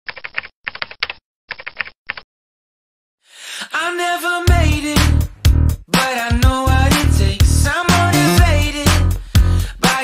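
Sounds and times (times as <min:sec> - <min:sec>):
keyboard typing clicks: 0:00.1 - 0:02.2.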